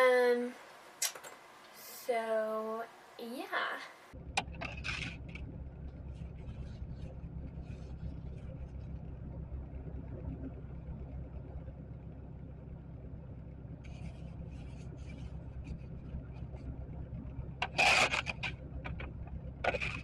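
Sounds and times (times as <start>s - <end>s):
car engine idling: 4.1s - 20.0s.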